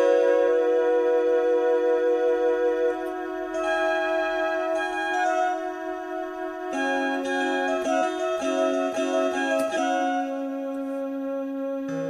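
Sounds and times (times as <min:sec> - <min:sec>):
keyboard music: 0:00.0 - 0:12.0.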